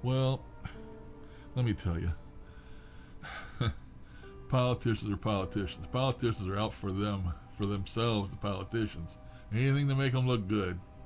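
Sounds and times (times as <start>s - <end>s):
man breathing in: 0.7s - 1.6s, 2.4s - 4.4s
man starting to laugh: 3.2s - 3.9s.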